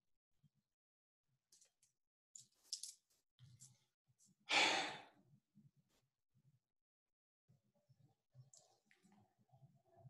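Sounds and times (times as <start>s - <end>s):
short breathy sigh: 4.5s - 5.1s.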